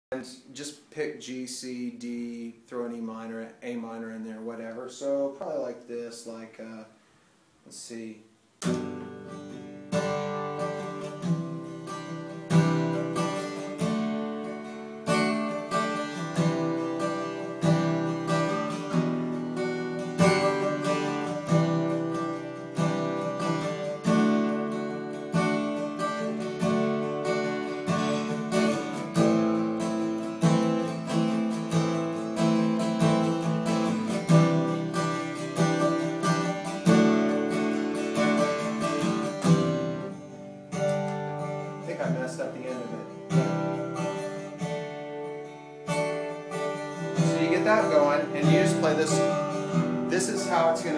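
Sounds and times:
acoustic guitar strumming chords: 8.6 - 50.9.

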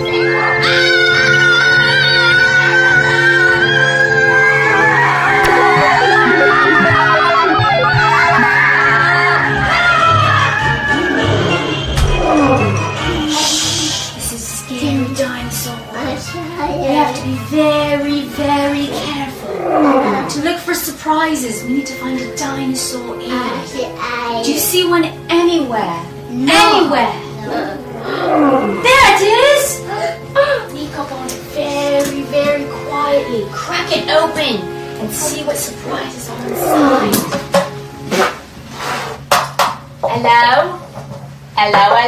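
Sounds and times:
background music: 0.0 - 39.1
roar: 19.4 - 20.4, 27.9 - 28.8, 36.4 - 37.4.

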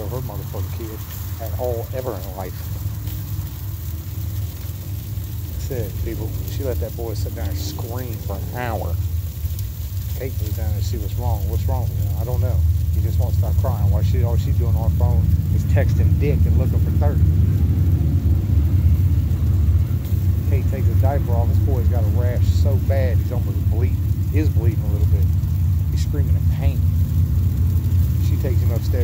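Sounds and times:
faint steady hum: 0.0 - 29.0
steady low rumble: 0.0 - 29.0.

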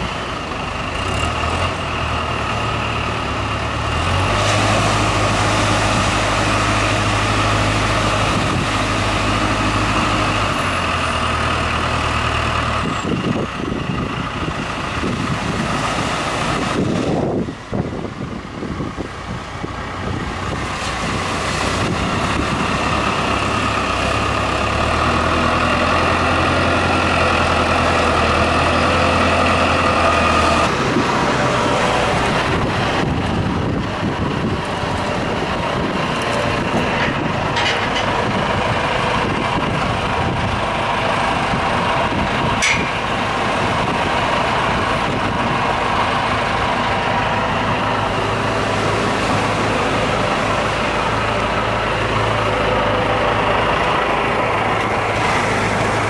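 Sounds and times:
gusty wind: 0.0 - 56.0
tractor diesel engine: 0.0 - 56.0
breaking surf: 4.0 - 10.3, 14.9 - 17.6, 20.4 - 33.0, 42.5 - 56.0.

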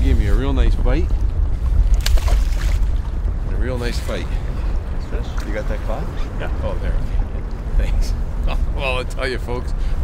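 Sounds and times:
wind on microphone: 0.0 - 8.8
river water flowing: 1.7 - 5.9
fish splashing into water: 1.9 - 2.9.

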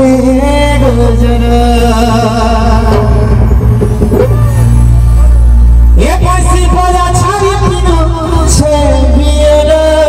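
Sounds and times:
person singing: 0.0 - 4.8
stage band music over pa: 0.0 - 10.0.

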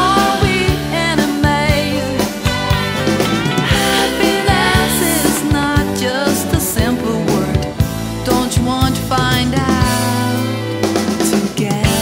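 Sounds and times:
woman singing: 0.0 - 2.4, 3.7 - 12.0
pop-rock band backing: 0.0 - 12.0.

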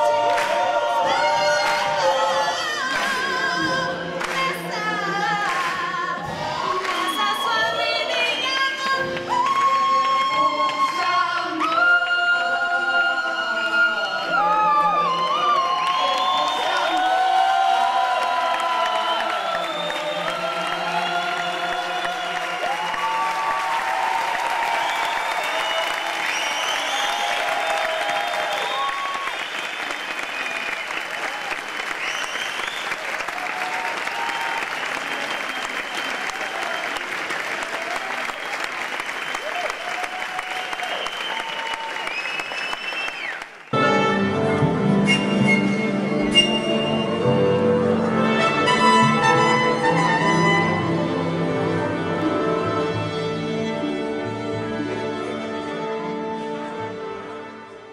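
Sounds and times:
audience shouting and cheering: 0.0 - 3.9, 5.8 - 8.6, 12.8 - 43.7
audience clapping: 0.0 - 12.6, 14.1 - 43.8.

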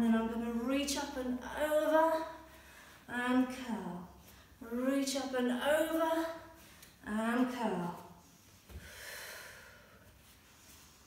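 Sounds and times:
woman breathing: 2.4 - 3.1, 8.3 - 11.0.

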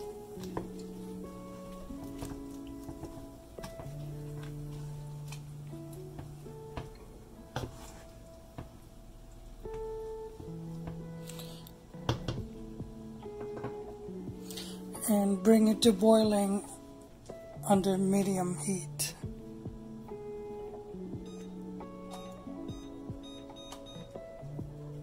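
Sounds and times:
background music of held notes: 0.0 - 25.0.

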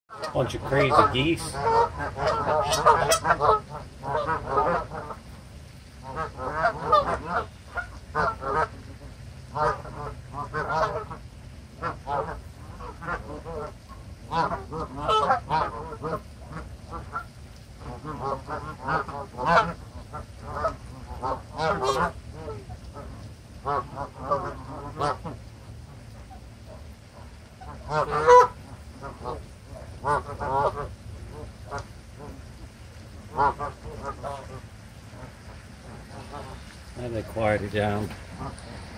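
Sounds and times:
geese honking: 0.1 - 5.3, 6.0 - 38.9.

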